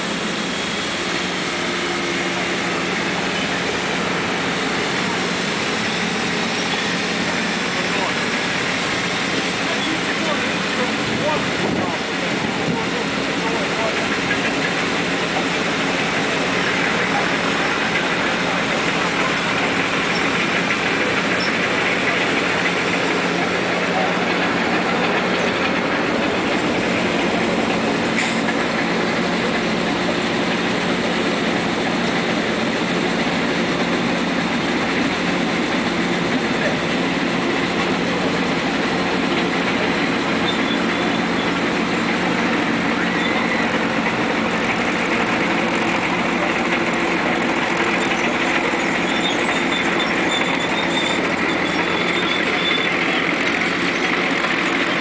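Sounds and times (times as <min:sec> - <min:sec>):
mechanical running noise: 0:00.0 - 0:55.0
motor-generator electric hum: 0:00.0 - 0:55.0.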